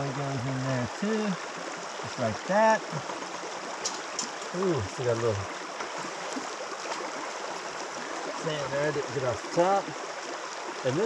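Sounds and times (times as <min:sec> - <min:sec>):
river flowing over stones: 0:00.0 - 0:11.0.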